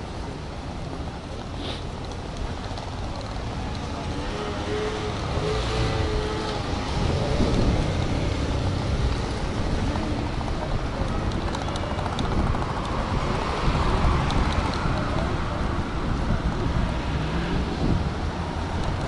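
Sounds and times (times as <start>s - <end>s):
road traffic rumble: 0.0s - 19.0s
wind buffeting microphone: 5.1s - 19.0s.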